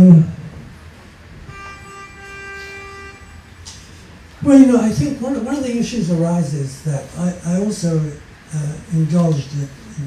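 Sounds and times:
steady pitched tone: 0:01.3 - 0:06.2.

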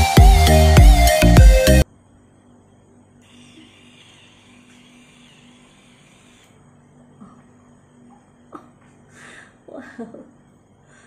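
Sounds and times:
soft whir: 0:02.7 - 0:07.6
hair curler motor hum: 0:03.2 - 0:06.6.

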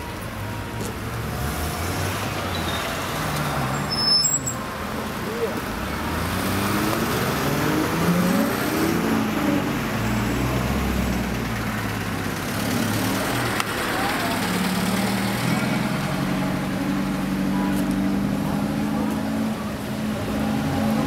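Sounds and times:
people's voices: 0:00.0 - 0:21.0
street traffic: 0:00.0 - 0:21.0.

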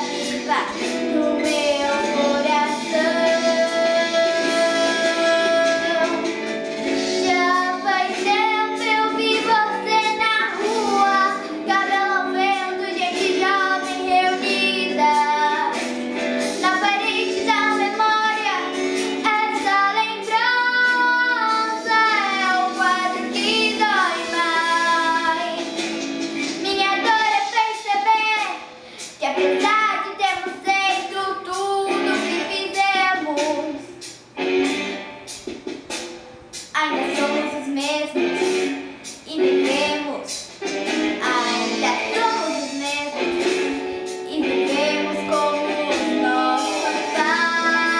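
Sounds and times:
girl singing: 0:00.0 - 0:06.4, 0:07.0 - 0:34.0, 0:36.7 - 0:38.6, 0:39.2 - 0:40.5, 0:41.1 - 0:47.9
instrumental accompaniment: 0:00.0 - 0:47.9.

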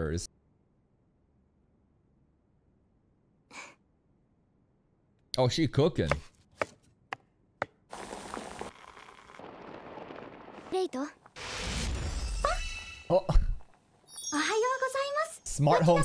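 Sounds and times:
knife chops on cutting board: 0:06.1 - 0:07.8.

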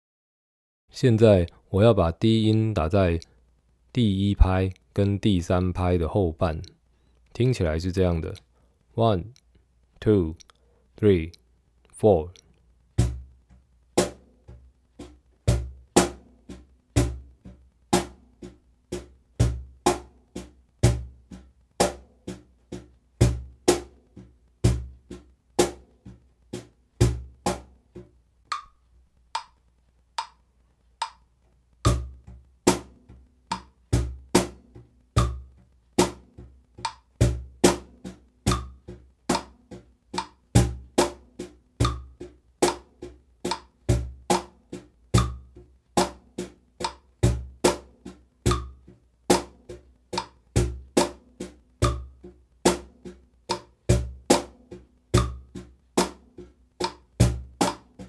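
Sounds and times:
cajon hand drumming: 0:31.9 - 0:58.0.

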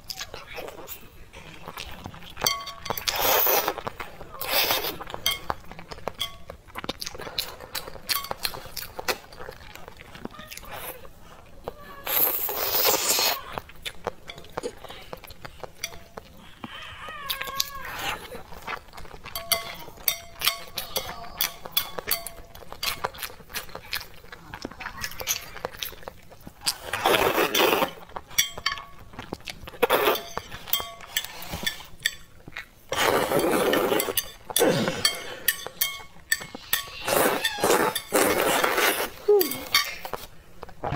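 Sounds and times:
noodle slurping: 0:03.0 - 0:05.2, 0:12.0 - 0:14.0, 0:22.8 - 0:28.1, 0:32.9 - 0:35.5, 0:36.4 - 0:40.9.

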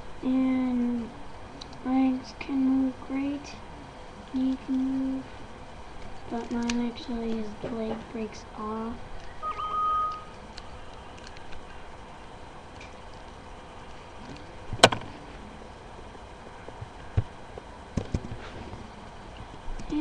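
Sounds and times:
steady high tone: 0:09.4 - 0:10.4.

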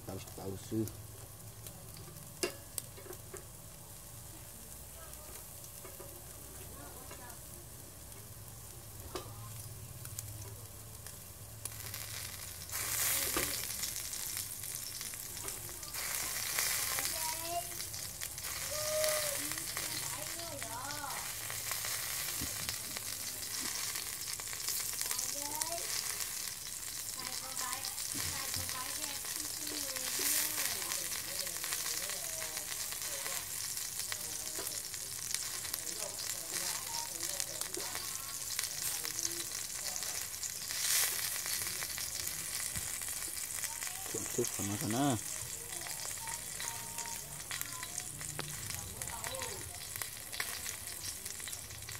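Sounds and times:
pork sizzling on a grill: 0:00.0 - 0:51.9.

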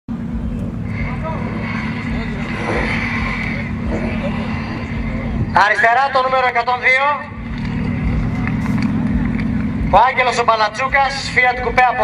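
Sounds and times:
car engines idling: 0:00.1 - 0:12.0
faint crowd voices: 0:00.1 - 0:12.0.

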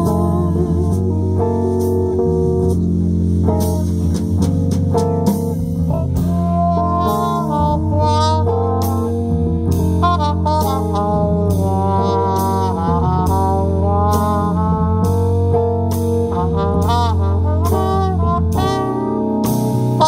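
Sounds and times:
trumpet melody with vibrato: 0:00.0 - 0:04.0, 0:05.7 - 0:20.0
drums: 0:00.0 - 0:20.0
keyboard bass: 0:00.0 - 0:20.0.

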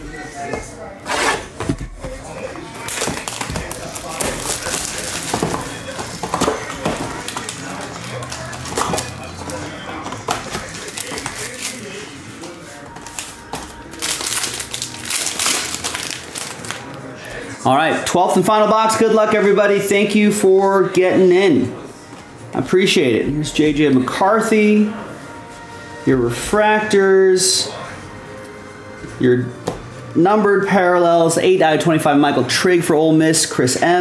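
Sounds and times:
plastic wrap crinkling: 0:02.8 - 0:17.2
cutter slitting shrink wrap: 0:13.9 - 0:16.9.

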